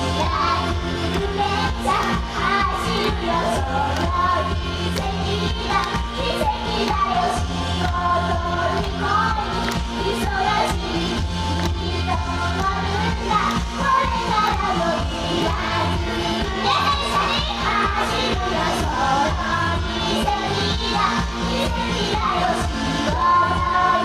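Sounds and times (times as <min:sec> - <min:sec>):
female voices singing: 0:00.0 - 0:24.0
pop song over loudspeakers: 0:00.0 - 0:24.0.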